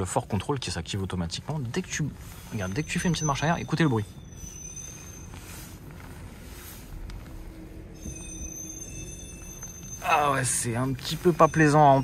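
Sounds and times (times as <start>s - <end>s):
high-pitched squeal of car steering: 1.8s - 12.0s.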